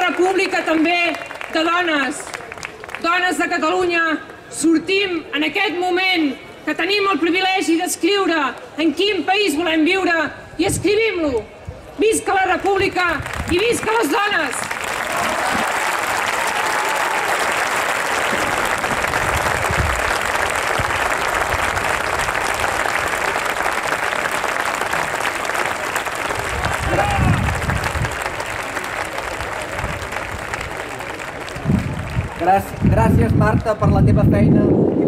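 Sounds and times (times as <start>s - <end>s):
crowd applauding: 0.0s - 3.2s, 13.2s - 33.8s.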